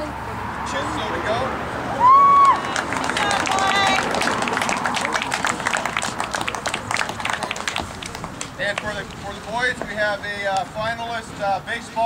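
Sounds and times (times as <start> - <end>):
group clapping: 2.3 - 9.3.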